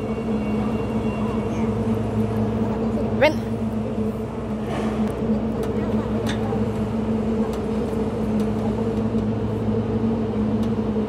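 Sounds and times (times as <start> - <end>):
large engine humming: 0.0 - 11.0.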